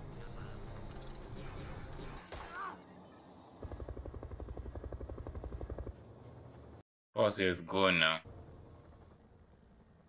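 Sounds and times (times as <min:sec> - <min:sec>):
cartoon helicopter rotor chopping: 0:03.6 - 0:05.9.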